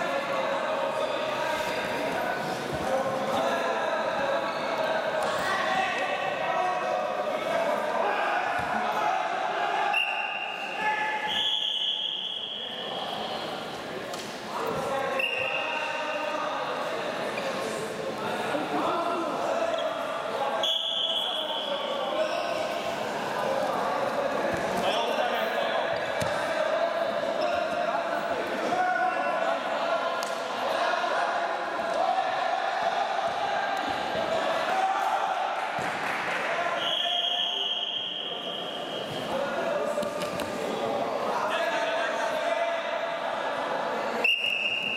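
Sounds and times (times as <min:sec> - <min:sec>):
referee whistle blasts: 0:09.9 - 0:12.9, 0:20.6 - 0:21.8, 0:36.8 - 0:39.3, 0:44.2 - 0:44.9.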